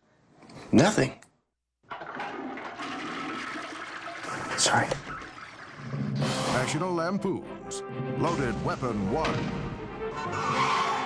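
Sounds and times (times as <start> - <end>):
toilet flushing: 1.8 - 6.8.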